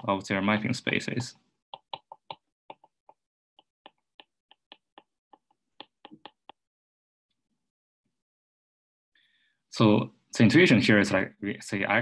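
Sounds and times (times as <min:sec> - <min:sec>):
stylus clicking on glass screen: 0:01.8 - 0:06.6.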